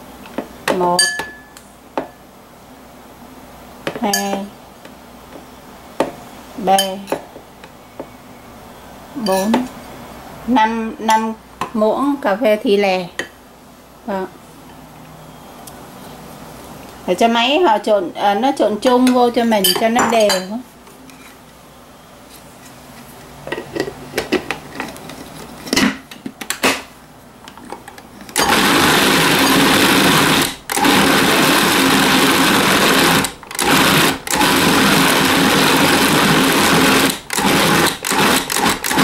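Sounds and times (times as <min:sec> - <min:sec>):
food processor motor running: 0:28.4 - 0:39.0.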